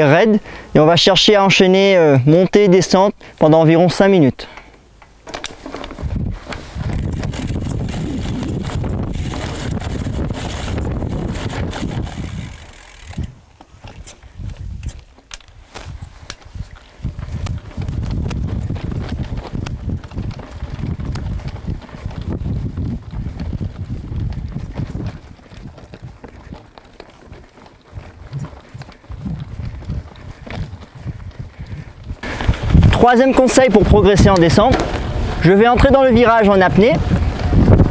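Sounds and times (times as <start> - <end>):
bike tyres rolling on dirt: 0.0 - 37.9
bike rattling over bumps: 4.6 - 37.9.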